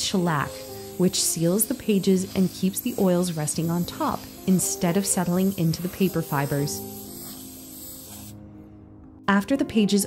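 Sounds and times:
aerosol spray can hissing: 0:00.0 - 0:08.4
soft background music: 0:00.0 - 0:10.0.

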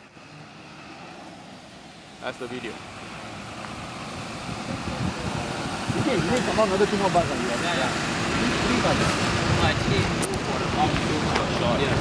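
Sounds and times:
bus engine running: 0:00.0 - 0:12.0.

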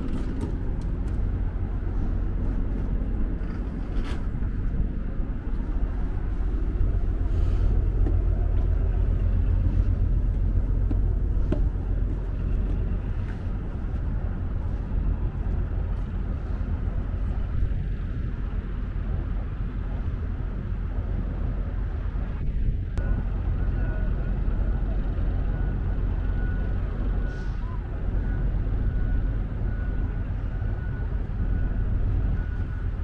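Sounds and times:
ship machinery rumble: 0:00.0 - 0:33.0.

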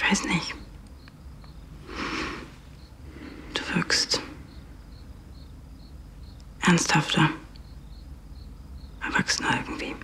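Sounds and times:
faint high chirping: 0:00.0 - 0:10.0
breathy whisper: 0:01.8 - 0:04.5.

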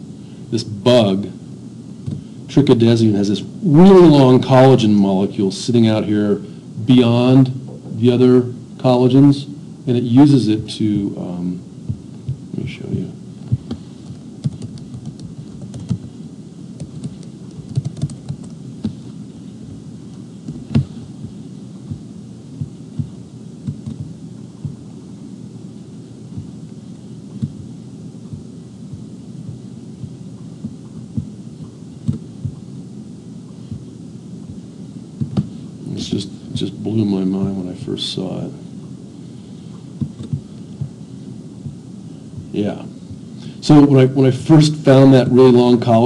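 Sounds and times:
steady low hum: 0:00.0 - 0:46.0
mouse clicking: 0:13.5 - 0:16.1, 0:16.8 - 0:19.0
typing on keyboard: 0:14.4 - 0:16.0, 0:16.8 - 0:18.6.

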